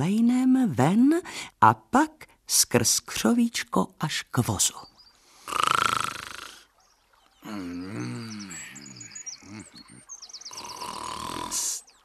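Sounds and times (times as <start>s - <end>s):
faint birds chirping: 4.2s - 12.0s
man snoring: 5.5s - 6.6s, 7.4s - 11.8s.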